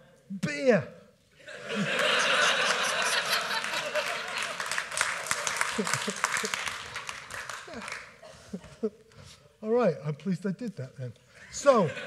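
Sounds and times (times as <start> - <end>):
audience laughing: 1.4 - 8.9, 11.4 - 12.0
audience clapping: 1.9 - 8.2.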